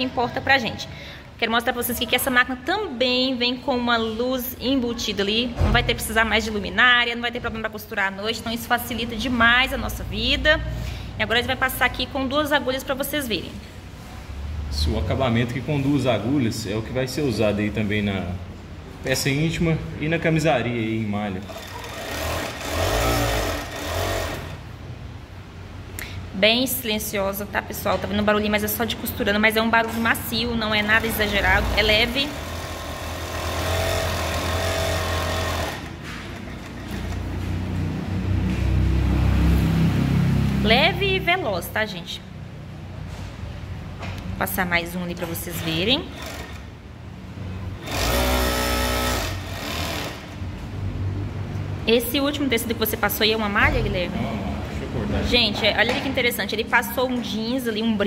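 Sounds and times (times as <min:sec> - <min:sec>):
sewing machine motor running: 0:21.4 - 0:24.7, 0:30.9 - 0:37.5, 0:46.1 - 0:46.8, 0:47.8 - 0:50.4.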